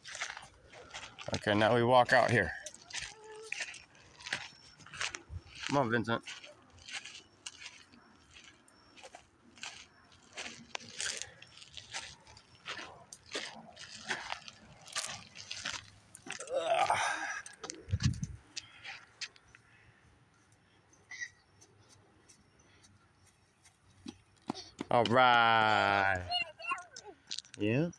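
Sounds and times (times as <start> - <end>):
footsteps crunching on gravel: 0.0 - 19.4.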